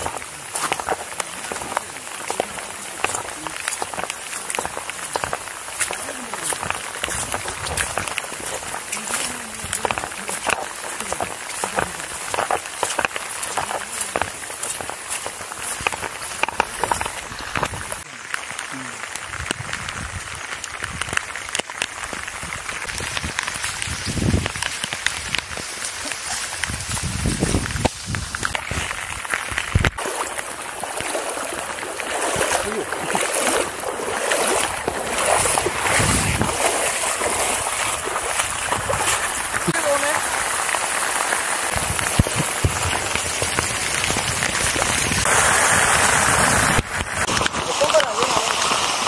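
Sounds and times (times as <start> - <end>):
heavy rain: 0.0 - 49.0.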